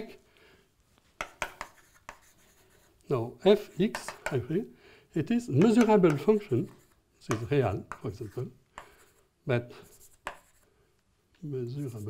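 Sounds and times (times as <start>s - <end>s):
chalk strokes on blackboard: 1.2s - 4.5s, 5.6s - 10.7s, 11.6s - 12.0s.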